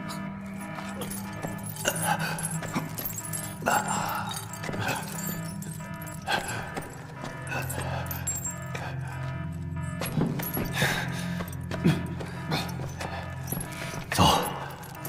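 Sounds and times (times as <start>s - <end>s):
low sustained music drone: 0.0s - 15.0s.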